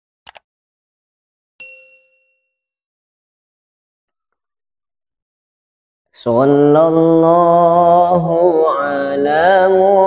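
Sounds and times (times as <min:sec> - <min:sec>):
notification bell ding: 0:01.6 - 0:02.7.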